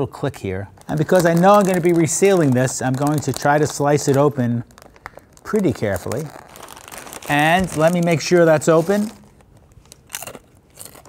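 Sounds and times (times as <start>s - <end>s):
chip bag rustling: 0.8s - 11.0s
potato chip crunching: 0.8s - 11.0s.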